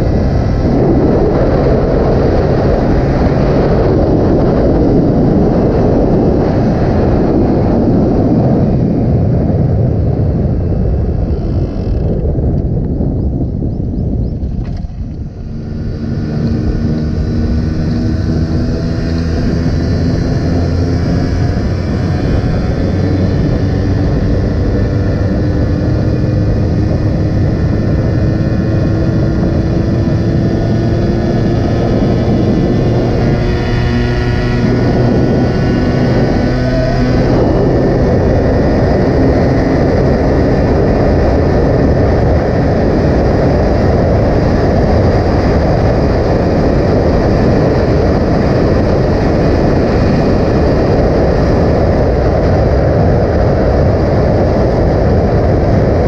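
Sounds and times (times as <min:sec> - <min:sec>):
two-stroke motorcycle engine at speed: 0:00.0 - 0:56.0
wind rush on microphone: 0:00.0 - 0:56.0.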